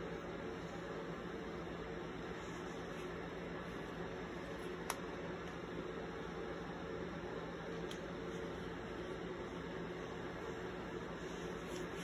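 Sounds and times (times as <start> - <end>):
low hiss and hum: 0.0 - 12.0.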